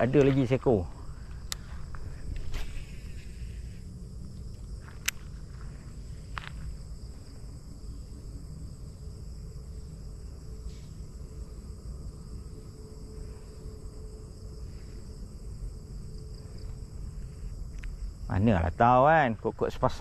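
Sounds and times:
crickets and insects chirping: 0.0 - 20.0.

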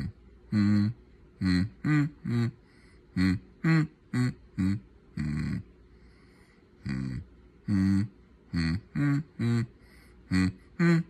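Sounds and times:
person humming: 0.0 - 5.7, 6.8 - 11.0.

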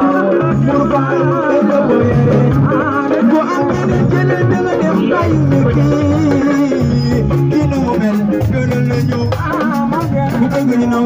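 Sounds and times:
keyboards: 0.0 - 11.0
live band music through speakers: 0.0 - 11.0
moving bass line: 0.0 - 11.0.

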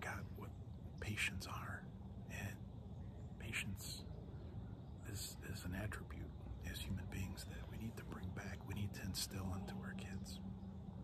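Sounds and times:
man whispering: 0.0 - 4.2, 5.0 - 10.5.

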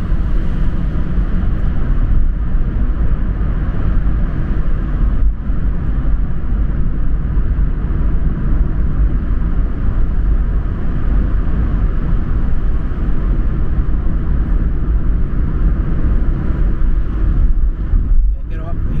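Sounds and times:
car driving low rumble: 0.0 - 19.0.

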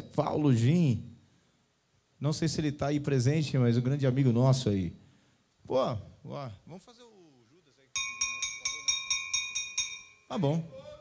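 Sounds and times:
bell-like metal tone struck rapidly: 8.0 - 10.4.

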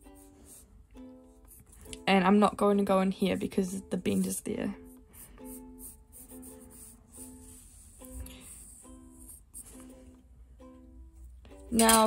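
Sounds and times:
plucked ukulele-like tune: 0.0 - 2.0, 8.8 - 12.0.

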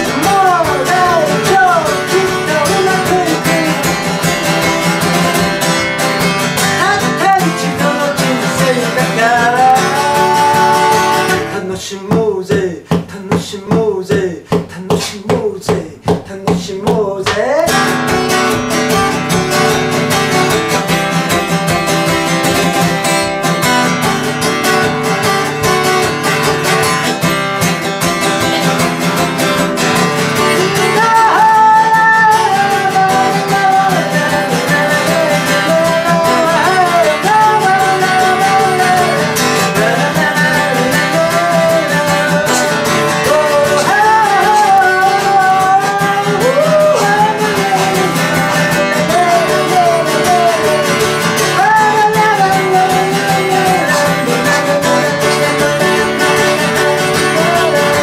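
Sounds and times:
acoustic guitar: 0.0 - 58.0
man singing: 0.0 - 58.0.

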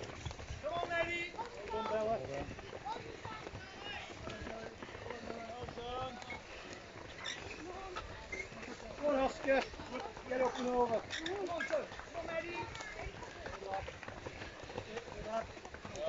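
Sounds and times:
footsteps on wooden bridge: 0.0 - 16.0.

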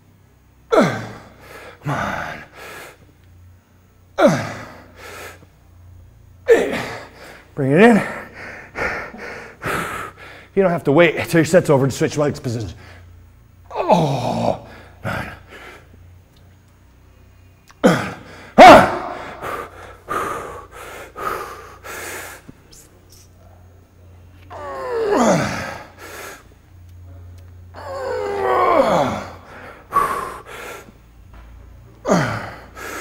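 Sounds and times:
man's strained groan: 0.7 - 2.6, 4.2 - 5.0, 6.5 - 9.9, 13.7 - 15.7, 17.8 - 20.4, 24.5 - 26.4, 27.7 - 30.8, 32.0 - 33.0
man breathing heavily: 0.7 - 3.1, 4.2 - 5.6, 6.5 - 10.6, 14.1 - 16.1, 17.8 - 23.1, 24.5 - 26.6, 27.7 - 33.0.

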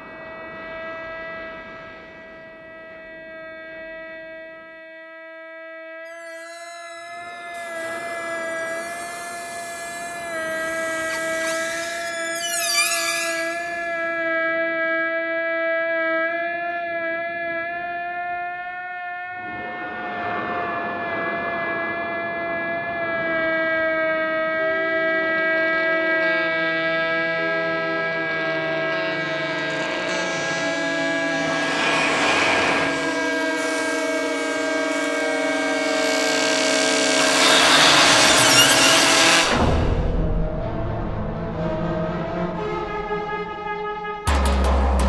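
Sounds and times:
hissing swell: 6.1 - 14.2, 30.1 - 39.6
orchestral score music: 29.8 - 45.0.

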